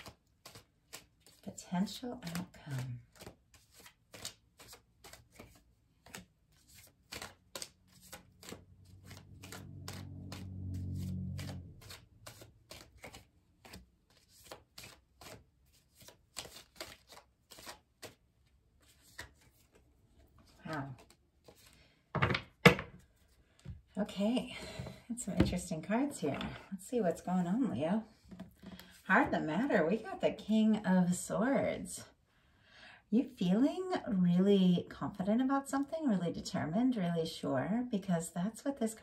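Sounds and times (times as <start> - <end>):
cards dealt on wooden table: 0.0 - 1.4, 2.3 - 18.2, 18.8 - 19.8, 20.4 - 21.8.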